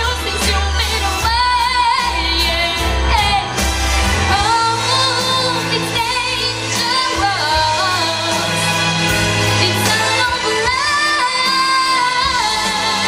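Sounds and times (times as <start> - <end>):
young woman singing: 0.0 - 8.8, 9.5 - 13.0
pop backing track: 0.0 - 13.0.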